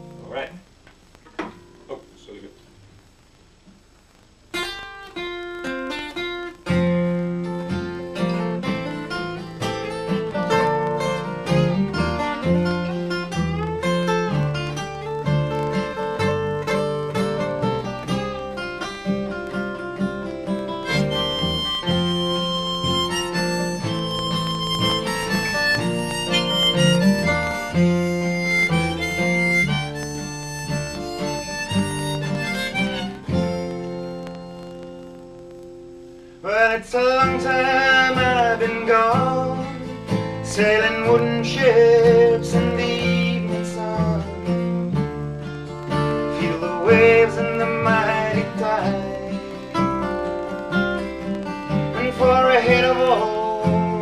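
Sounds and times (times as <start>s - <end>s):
acoustic guitars: 0.0s - 54.0s
harmonica: 8.1s - 35.3s.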